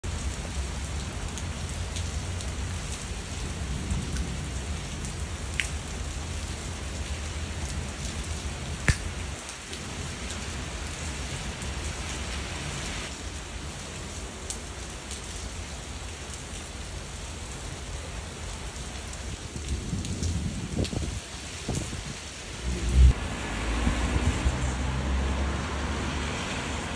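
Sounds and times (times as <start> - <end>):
heavy rain falling: 0.0 - 26.9
sharp tap: 8.8 - 9.1.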